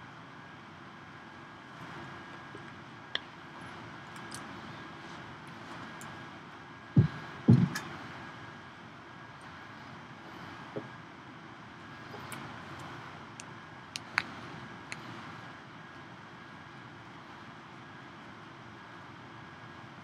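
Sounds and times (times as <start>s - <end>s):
room noise: 0.9s - 19.9s
small clicks and taps: 12.1s - 15.1s.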